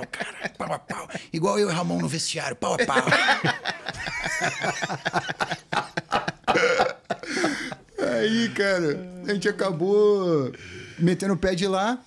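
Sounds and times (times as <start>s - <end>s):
men laughing hard: 0.0s - 0.6s, 2.8s - 8.5s.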